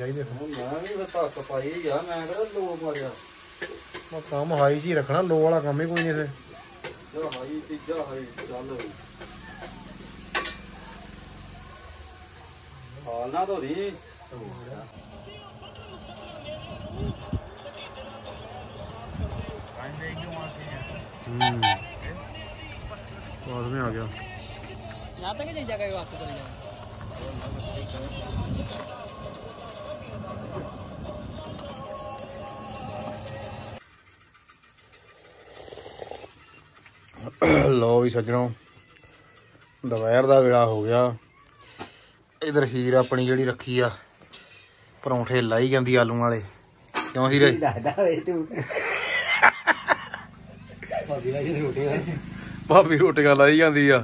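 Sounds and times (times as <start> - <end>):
distant voices: 0.0 - 47.2, 48.5 - 54.0
vehicle horn toots: 21.3 - 22.1
man laughing wheezily: 48.5 - 51.1.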